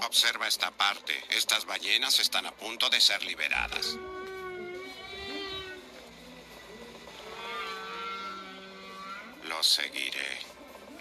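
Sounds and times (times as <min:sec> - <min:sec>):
whale calls: 0:07.2 - 0:09.4.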